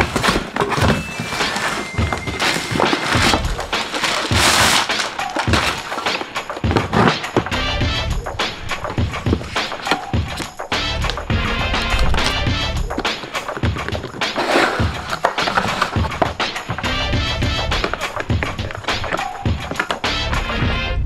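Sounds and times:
cardboard box handling: 0:00.0 - 0:07.6, 0:08.7 - 0:11.2, 0:11.8 - 0:16.5, 0:17.8 - 0:20.0
background music: 0:00.0 - 0:21.0.

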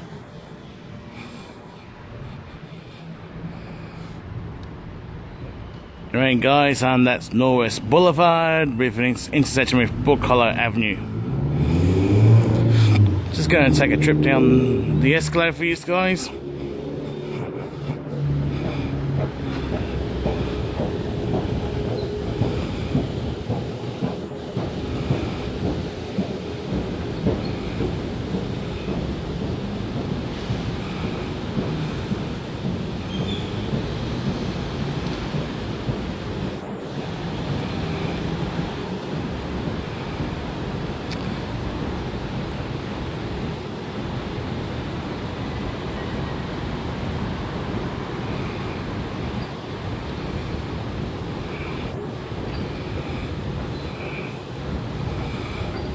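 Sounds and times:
escalator rumbling: 0:06.2 - 0:55.9.

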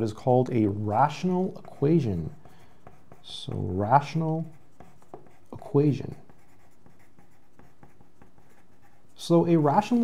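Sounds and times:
pencil scratching on paper: 0:00.8 - 0:10.0.

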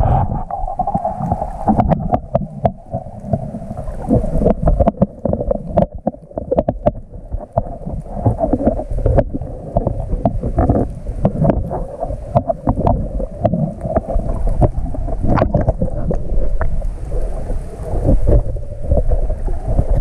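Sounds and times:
low rumble of moving water: 0:00.0 - 0:20.0
sharp underwater clicks and crackles: 0:00.0 - 0:20.0.

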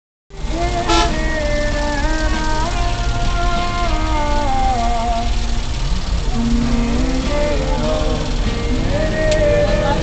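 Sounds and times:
bus engine and road rumble: 0:00.3 - 0:10.0
music with held notes: 0:00.4 - 0:10.0.

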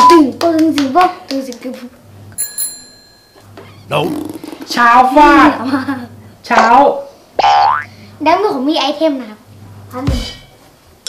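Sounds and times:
bright bell ding: 0:02.4 - 0:03.5.

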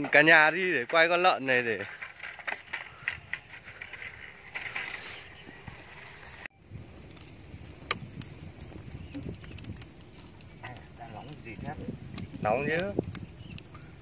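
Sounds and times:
wooden poles knocking and scraping: 0:00.0 - 0:06.5
log fire crackling and popping: 0:00.0 - 0:14.0.

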